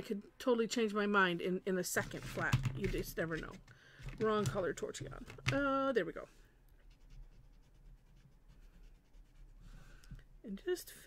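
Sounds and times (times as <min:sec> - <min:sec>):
shading tool scratching on paper: 0:06.8 - 0:09.9.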